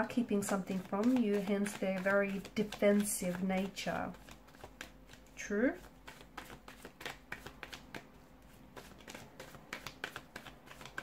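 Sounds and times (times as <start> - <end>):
cards being shuffled: 0.1 - 11.0.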